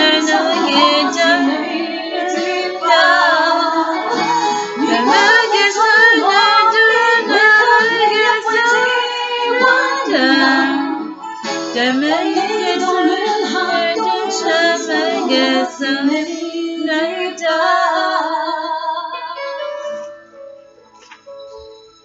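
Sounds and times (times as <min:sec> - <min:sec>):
woman singing into microphone: 0:00.0 - 0:11.2, 0:11.8 - 0:19.4.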